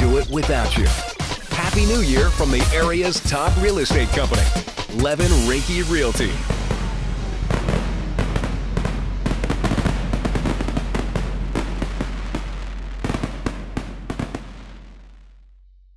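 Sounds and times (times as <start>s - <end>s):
fireworks bangs and crackles: 0.0s - 15.3s.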